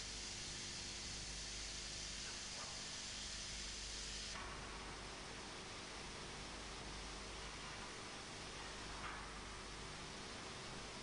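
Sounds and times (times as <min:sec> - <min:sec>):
faint steady hiss: 0:00.0 - 0:11.0
low even hum: 0:00.0 - 0:11.0.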